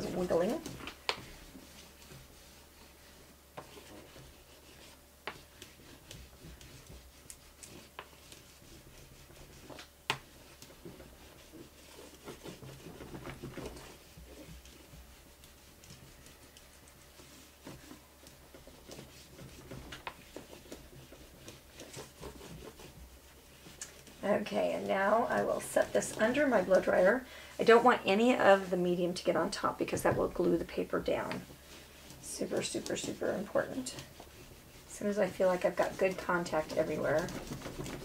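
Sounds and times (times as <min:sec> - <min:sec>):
plastic cap rubbing on paper: 0:00.0 - 0:28.9, 0:31.3 - 0:38.0.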